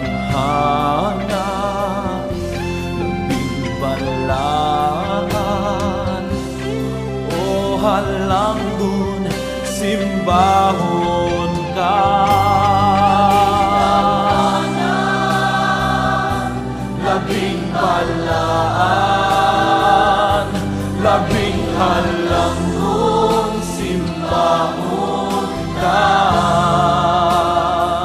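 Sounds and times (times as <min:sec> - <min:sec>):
low musical accompaniment: 0:00.0 - 0:28.0
person singing worship song: 0:00.0 - 0:28.0.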